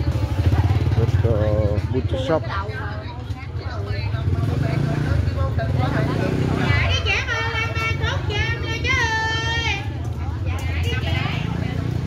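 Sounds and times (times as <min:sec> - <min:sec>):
chatter of voices: 0:00.0 - 0:12.0
motor scooter passing by: 0:03.8 - 0:09.8.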